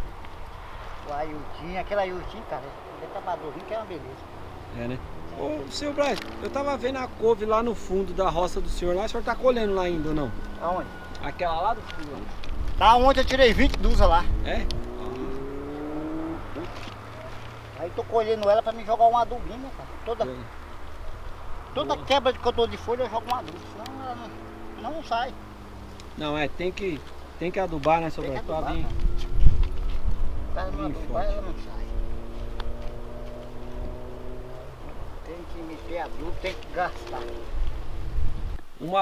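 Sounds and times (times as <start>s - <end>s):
vehicle engine accelerating: 1.1s - 38.6s.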